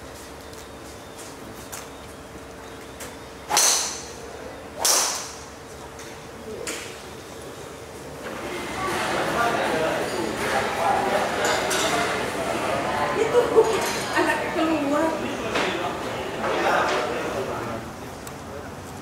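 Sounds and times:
golf driver striking balls: 0:03.5 - 0:05.6
babble of many voices: 0:08.3 - 0:18.8.

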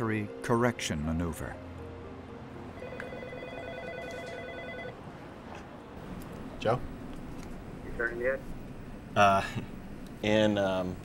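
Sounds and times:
electronic ringing tone: 0:02.8 - 0:05.0
low room hum: 0:02.8 - 0:11.0.

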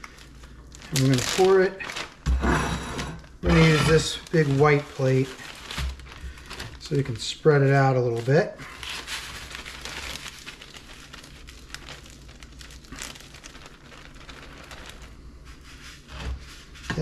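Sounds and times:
plastic bag crinkling: 0:00.0 - 0:02.3, 0:03.2 - 0:17.0.

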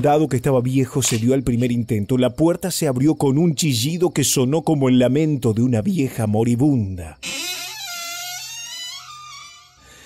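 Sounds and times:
person narrating: 0:00.0 - 0:07.2
door creaking open: 0:07.2 - 0:10.0.

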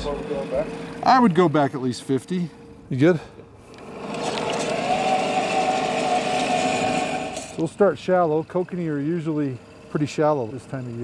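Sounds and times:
electric motor whine: 0:03.6 - 0:07.7.

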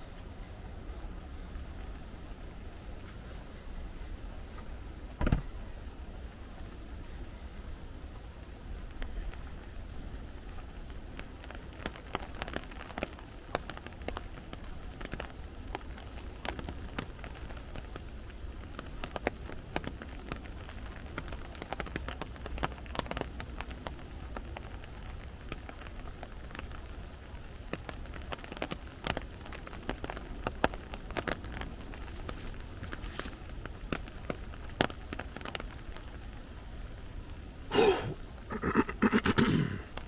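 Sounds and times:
rain falling through trees: 0:00.0 - 0:40.0
big raindrops tapping: 0:00.4 - 0:40.0.

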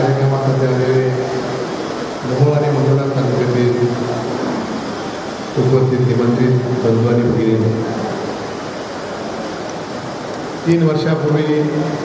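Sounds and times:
steady rushing hiss: 0:00.0 - 0:12.0.

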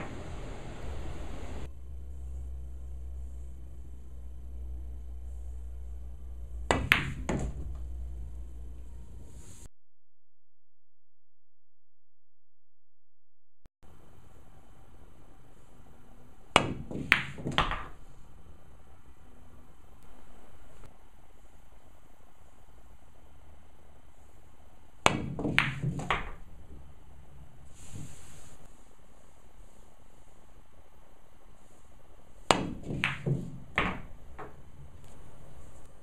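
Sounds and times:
pool balls clicking: 0:06.4 - 0:08.8, 0:16.6 - 0:18.1, 0:25.0 - 0:28.5, 0:32.5 - 0:35.6
cue tip striking ball: 0:06.6 - 0:07.8, 0:16.6 - 0:18.0, 0:25.1 - 0:26.5, 0:32.5 - 0:34.6
cue striking ball click: 0:06.7 - 0:07.5
ball knocking into pocket: 0:06.7 - 0:07.8, 0:16.6 - 0:18.0, 0:25.1 - 0:26.4, 0:32.5 - 0:34.6.

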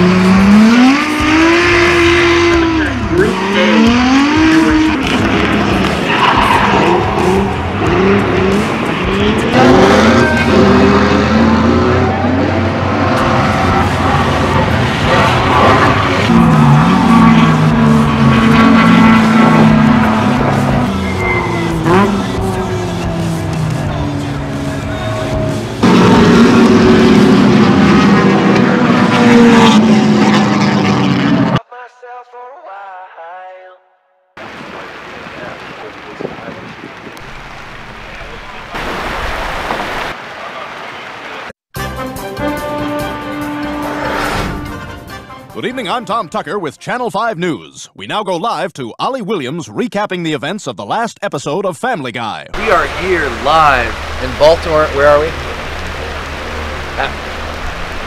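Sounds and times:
car engines revving high: 0:00.0 - 0:31.6, 0:52.6 - 0:58.0
tyres screeching: 0:05.8 - 0:12.2, 0:13.1 - 0:26.4.

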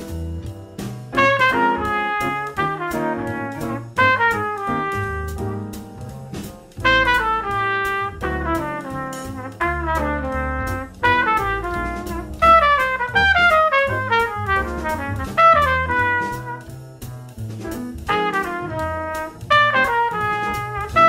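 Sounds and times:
backing track with bass and drums: 0:00.0 - 0:21.0
jazz trumpet runs: 0:01.1 - 0:21.0.

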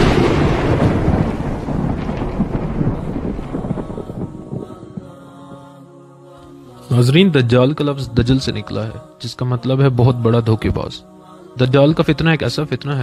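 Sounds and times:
rolling thunder crash: 0:00.0 - 0:05.6.

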